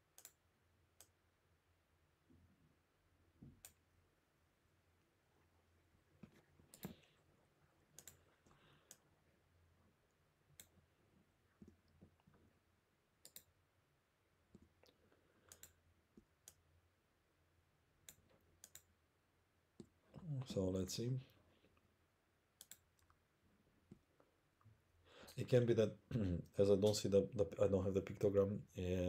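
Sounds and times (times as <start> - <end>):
computer mouse clicks: 0.1 - 0.4, 1.0 - 1.2, 3.6 - 3.8, 6.2 - 7.1, 7.9 - 9.0, 10.5 - 10.8, 13.2 - 13.5, 14.5 - 16.6, 18.0 - 18.9, 22.6 - 23.2.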